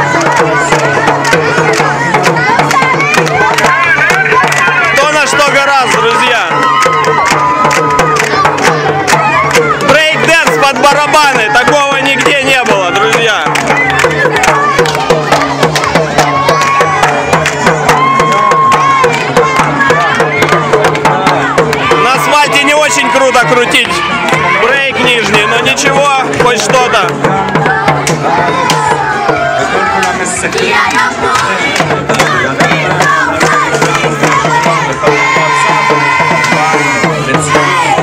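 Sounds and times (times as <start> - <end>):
crowd chatter: 0.0 - 38.0
marching drums: 0.0 - 38.0
music: 0.0 - 38.0.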